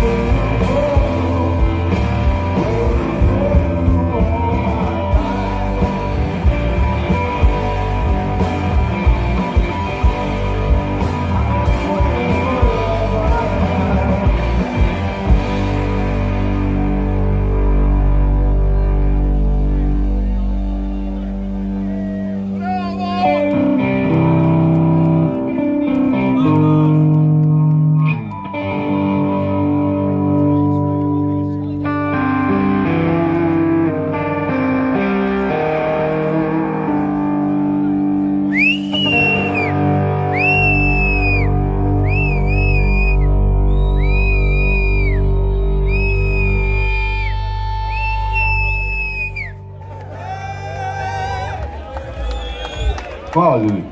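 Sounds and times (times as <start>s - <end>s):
lead guitar bending high notes: 0.0s - 51.4s
live rock band: 0.0s - 53.9s.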